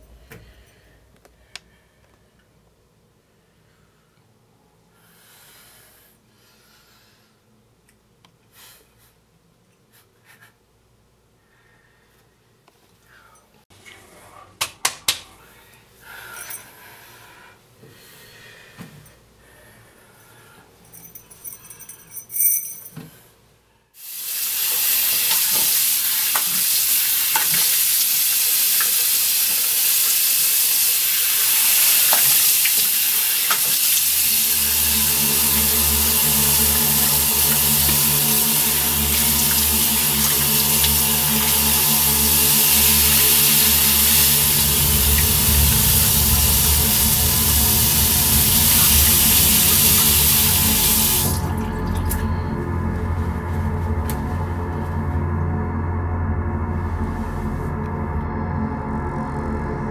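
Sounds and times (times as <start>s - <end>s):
tap water running into sink: 24.3s - 52.2s
low droning music tones: 34.0s - 59.9s.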